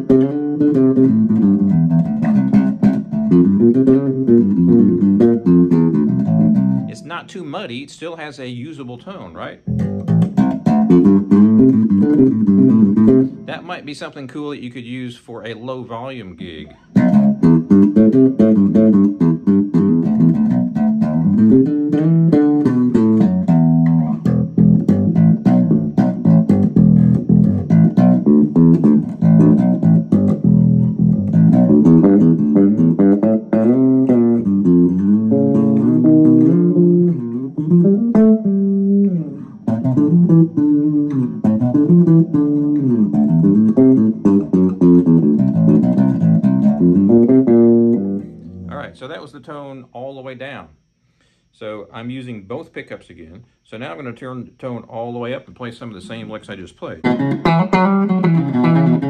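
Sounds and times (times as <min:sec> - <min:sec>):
plucked electric bass licks: 0:00.0 - 0:50.0, 0:55.5 - 0:59.0.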